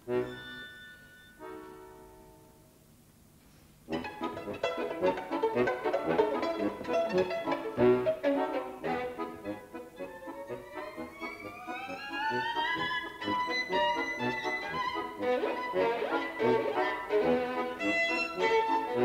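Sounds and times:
violin bowed notes: 3.9 - 19.0.

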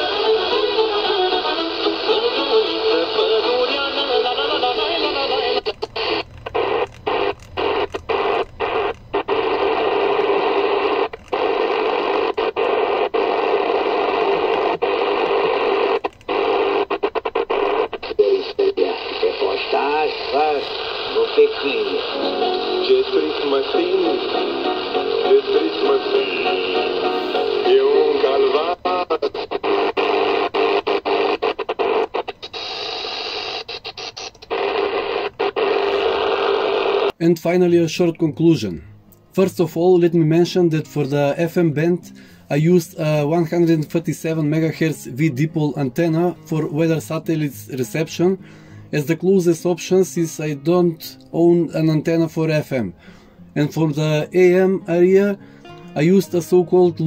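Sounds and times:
electrical hum: 0.0 - 37.2
radio static noise: 0.0 - 38.7
am radio music: 0.0 - 57.0
am radio speech: 17.8 - 30.4, 37.1 - 52.9, 53.6 - 55.4, 56.0 - 57.0.

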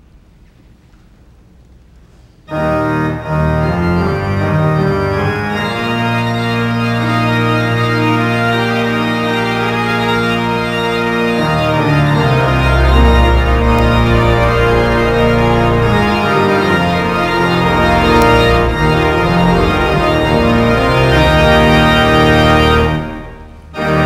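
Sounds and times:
pipe organ chords: 2.5 - 24.0.

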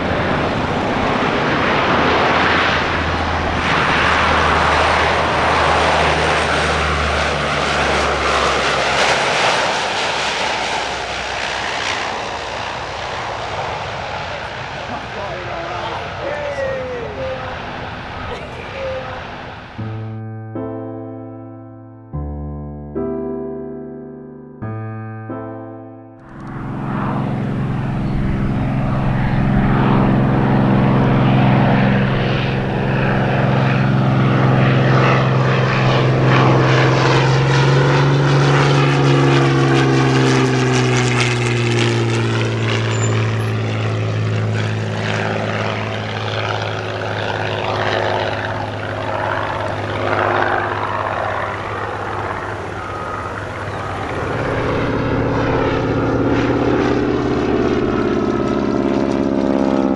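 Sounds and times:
propeller plane engine droning: 0.0 - 21.2, 26.2 - 59.9.

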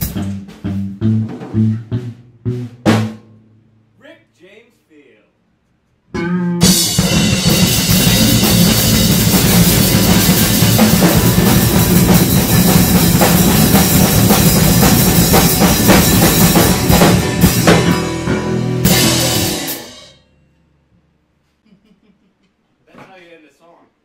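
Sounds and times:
low electric guitar notes: 0.0 - 3.8, 6.1 - 20.5
drum kits played hard: 0.0 - 4.3, 6.2 - 20.2.

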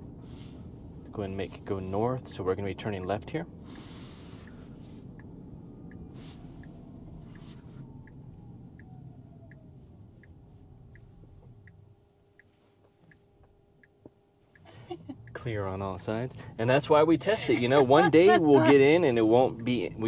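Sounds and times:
road and tyre rumble: 0.0 - 20.0
turn signal ticking: 0.0 - 20.0
faint falling whine: 4.4 - 12.0.

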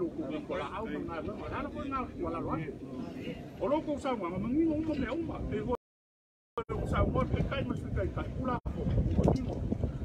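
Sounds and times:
wind rumbling on microphone: 1.0 - 5.8, 6.6 - 10.0.

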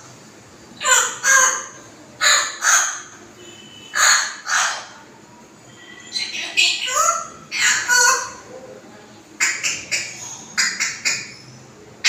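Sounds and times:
bird harsh calls: 0.8 - 5.0, 5.8 - 8.5, 9.4 - 11.7.

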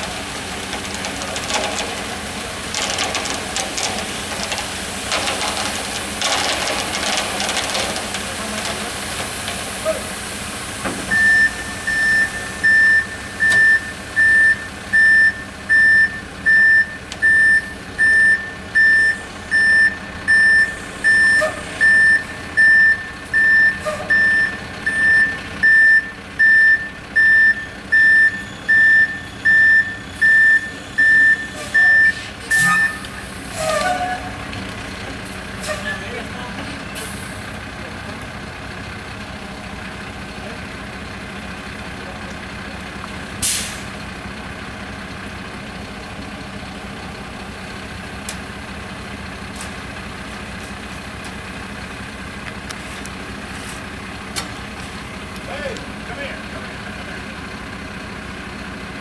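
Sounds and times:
truck engine running: 0.0 - 59.0
truck reversing alarm beeping: 11.1 - 34.4.

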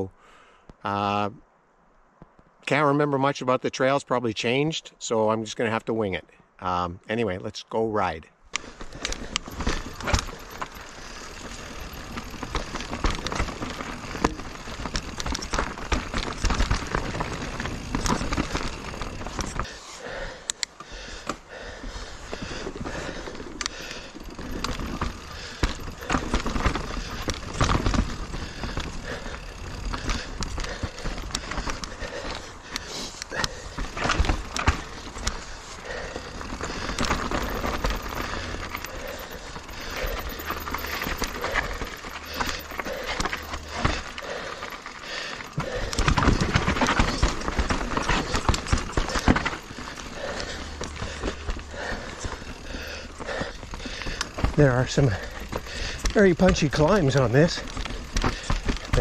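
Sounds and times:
bike rattling and knocking: 8.6 - 19.8, 20.8 - 59.0
bike tyres rolling over dirt: 8.6 - 59.0.

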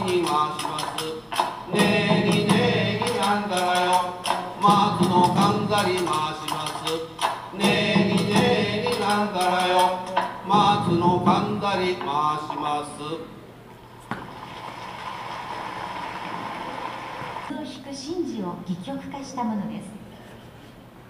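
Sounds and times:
men chanting in unison: 0.0 - 7.0, 7.6 - 13.3
percussion strikes: 0.0 - 12.9.

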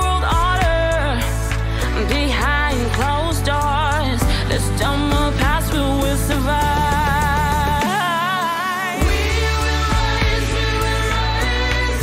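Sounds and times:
sustained low backing music: 0.0 - 8.0, 9.0 - 12.0
woman singing with vibrato: 0.0 - 12.0.

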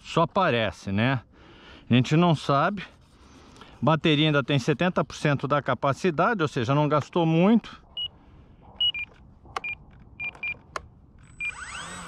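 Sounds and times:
electric motor whine: 11.2 - 12.0.

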